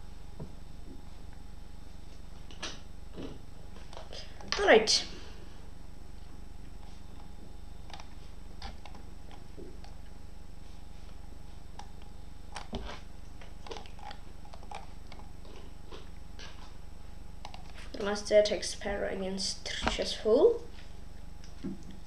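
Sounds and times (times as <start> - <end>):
steady low hum: 0.0 - 22.0
computer mouse clicks: 17.4 - 17.7.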